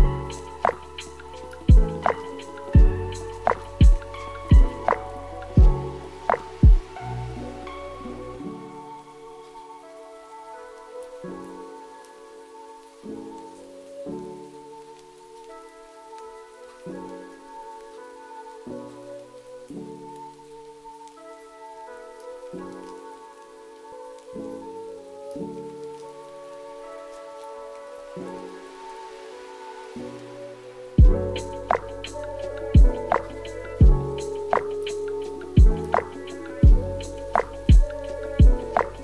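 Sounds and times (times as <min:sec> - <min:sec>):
soft lofi hip hop chords: 0:00.0 - 0:23.4, 0:31.0 - 0:39.0
steady rain hiss: 0:00.0 - 0:39.0.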